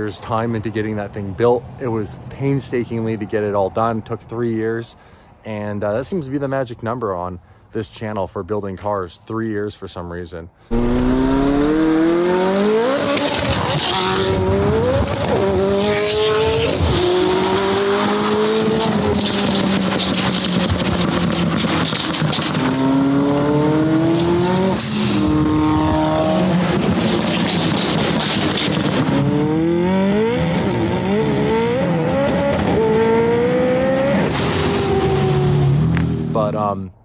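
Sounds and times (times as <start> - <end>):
sports car engine accelerating: 10.7 - 36.3.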